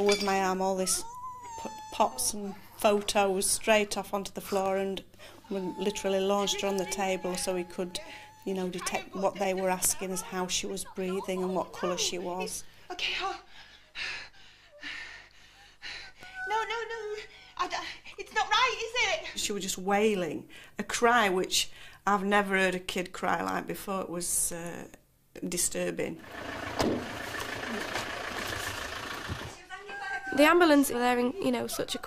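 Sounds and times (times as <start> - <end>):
vehicle engine running: 26.2 - 29.6.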